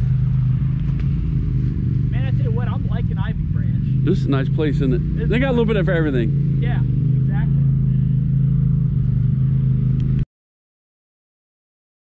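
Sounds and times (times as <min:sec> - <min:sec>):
engine running steadily: 0:00.0 - 0:10.2.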